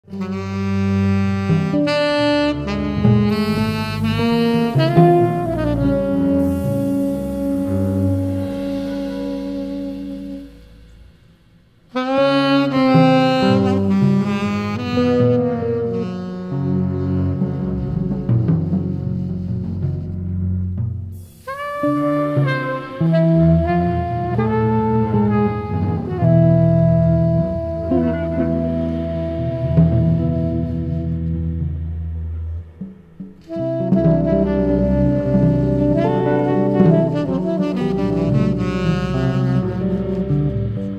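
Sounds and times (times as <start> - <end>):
saxophone long held notes: 0.0 - 11.2, 11.9 - 20.1, 21.2 - 32.8, 33.4 - 40.9
double bass: 0.0 - 40.9.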